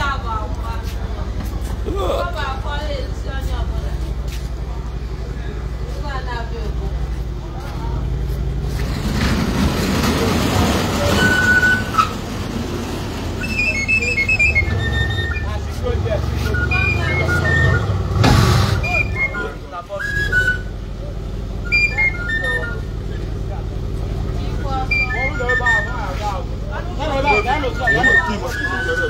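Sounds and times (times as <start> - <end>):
car engine low rumble: 0.0 - 29.0
people talking: 0.0 - 29.0
short whistle-like tones: 13.4 - 15.7, 16.4 - 18.0, 18.6 - 21.0, 21.6 - 23.3, 24.6 - 26.3, 27.2 - 29.0.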